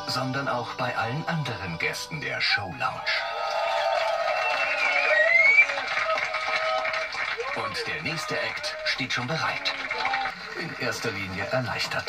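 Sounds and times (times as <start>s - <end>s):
male vocal group singing: 0.0s - 3.2s.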